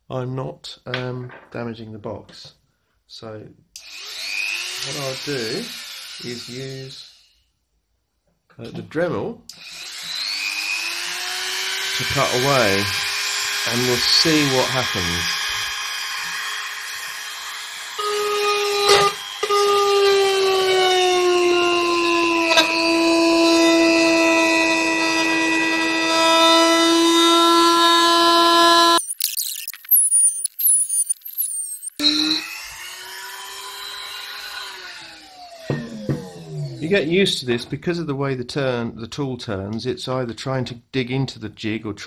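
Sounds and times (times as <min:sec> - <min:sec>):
rotary tool whining: 0:03.8 - 0:07.4, 0:09.5 - 0:37.0.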